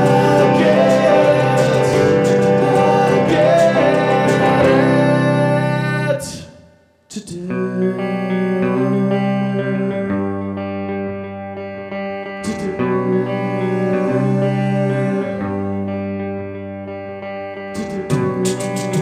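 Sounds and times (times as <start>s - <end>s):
electric guitar chords: 0.0s - 6.4s, 7.4s - 19.0s.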